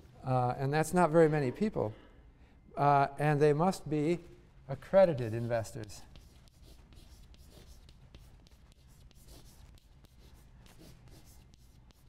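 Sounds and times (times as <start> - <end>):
chalk writing on a blackboard: 5.1 - 12.0.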